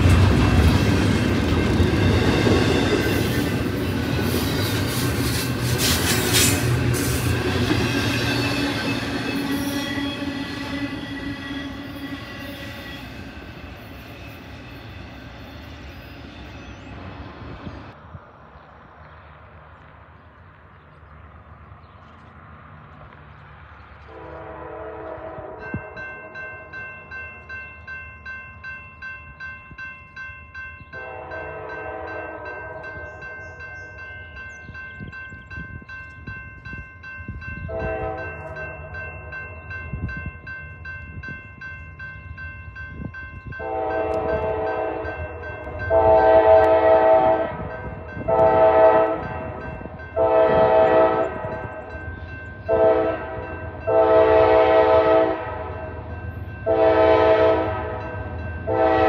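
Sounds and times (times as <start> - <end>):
crossing bell ringing: 0.0 - 16.9, 24.7 - 59.0
locomotive air horn blasts: 5.6 - 13.4, 24.1 - 26.5, 31.0 - 33.0, 37.6 - 38.7, 43.6 - 47.7, 48.3 - 51.7, 52.7 - 56.0, 56.6 - 59.0.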